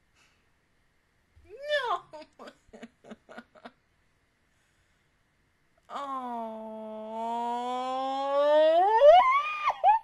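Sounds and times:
woman's drawn-out vocal ooh: 5.9s - 10.0s.

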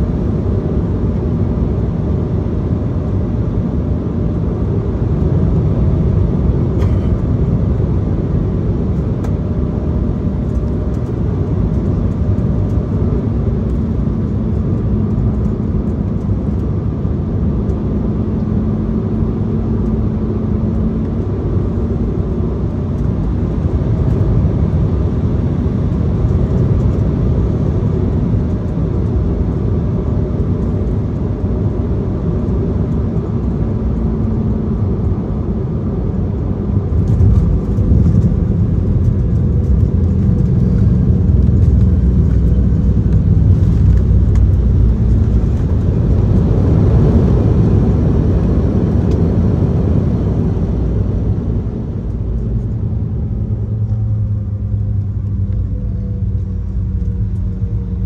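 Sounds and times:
jet engine cabin rumble: 0.0s - 58.0s
jet touching down on runway: 0.0s - 58.0s
faint engine tones: 2.1s - 58.0s.

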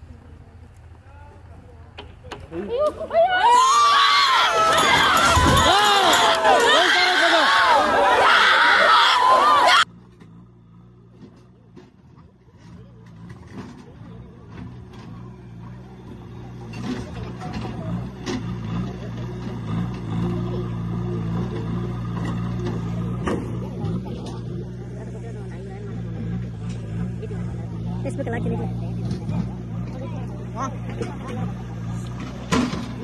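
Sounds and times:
crowd voices: 0.0s - 33.0s
diesel engine running: 0.0s - 33.0s.

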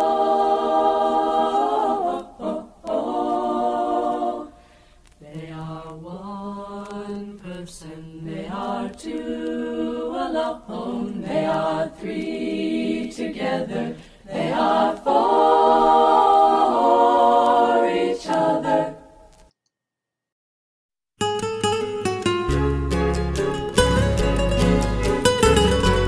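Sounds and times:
choir singing a cappella: 0.0s - 19.2s.

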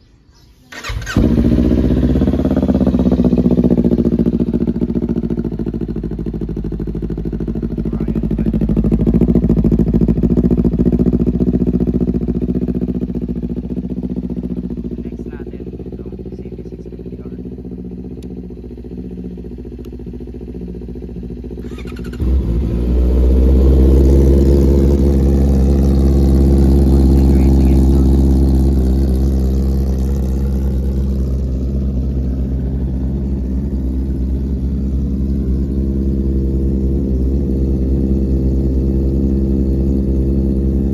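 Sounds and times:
louder motorcycle engine idling: 0.7s - 40.9s
motorcycle engine idling: 0.7s - 40.9s.

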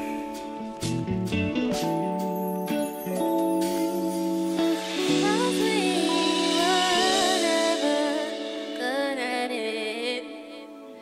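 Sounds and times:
live band sustained chords: 0.0s - 11.0s
gliding wordless melody: 1.7s - 11.0s.

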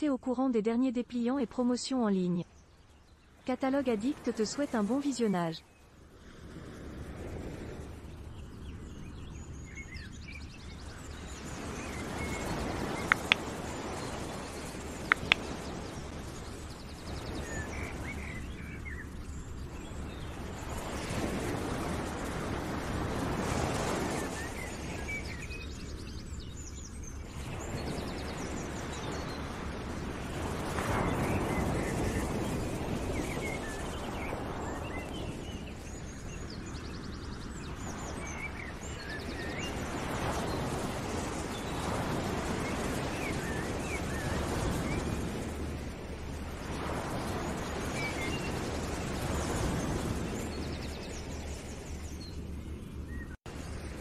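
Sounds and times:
small birds chirping: 8.3s - 21.2s
sharp clicks: 13.0s - 13.4s, 15.1s - 15.5s.

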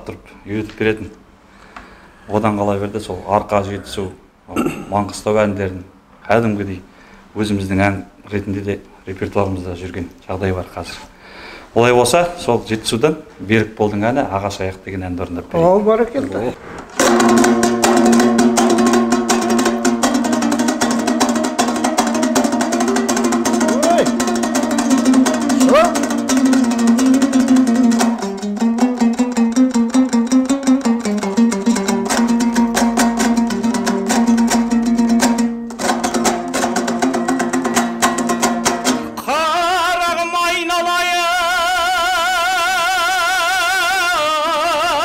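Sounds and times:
lute strummed fast: 16.9s - 40.1s.

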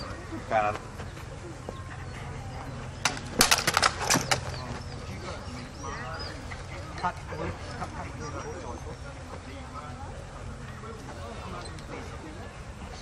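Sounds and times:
swords clashing: 3.1s - 4.5s.

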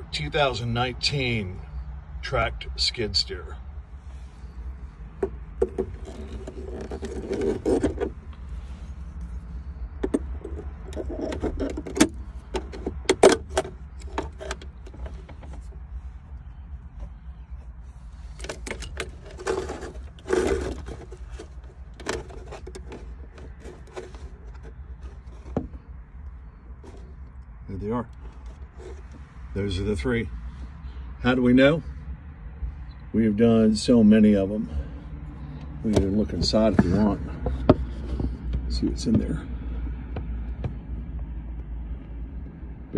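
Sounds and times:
plastic trim clicks and scrapes: 5.2s - 8.2s, 10.0s - 15.7s, 18.3s - 25.8s.

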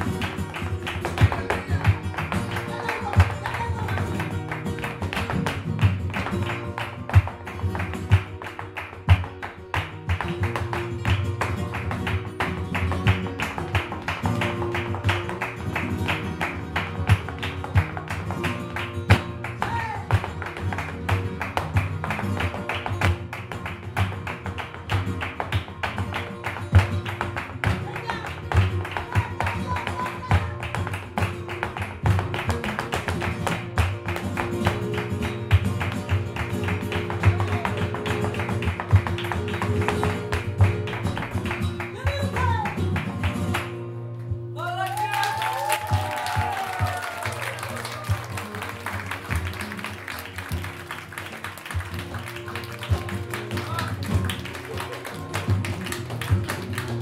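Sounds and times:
dancer's shoe footwork: 0.0s - 44.5s, 45.2s - 57.0s
flamenco guitars playing: 0.0s - 57.0s
handclaps: 0.0s - 57.0s.

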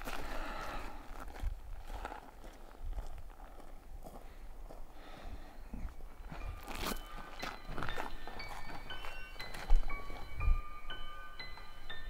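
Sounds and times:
soft footsteps: 0.0s - 5.0s, 5.7s - 12.0s.

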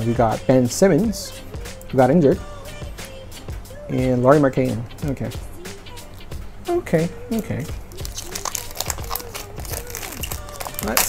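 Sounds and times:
soft background music: 0.0s - 11.0s
wrapper crinkling: 7.9s - 11.0s.

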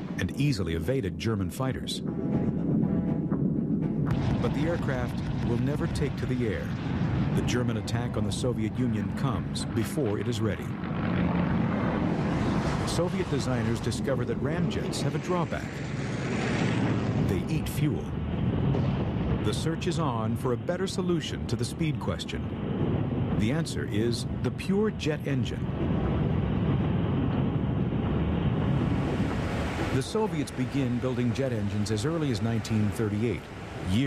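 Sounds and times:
propeller aircraft engine: 10.7s - 17.5s.

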